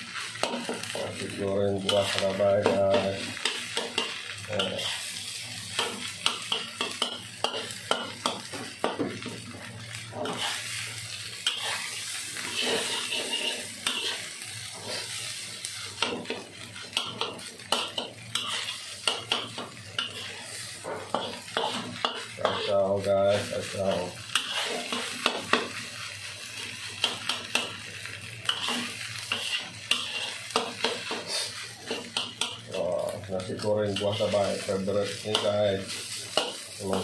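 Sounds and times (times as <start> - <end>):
frying sizzle: 0.0 - 37.0
metal spatula scraping wok: 0.2 - 8.1, 10.1 - 10.8, 11.4 - 15.2, 16.0 - 25.8, 28.4 - 32.7, 33.9 - 37.0.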